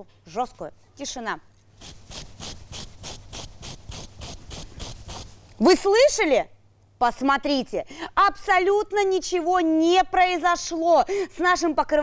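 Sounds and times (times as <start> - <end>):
hairbrush scraping through faux fur: 1.5 - 5.7.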